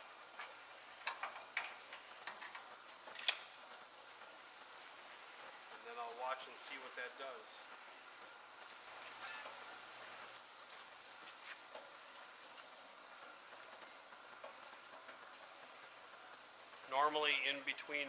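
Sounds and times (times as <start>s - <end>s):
conveyor belt hum and whine: 0.0s - 18.0s.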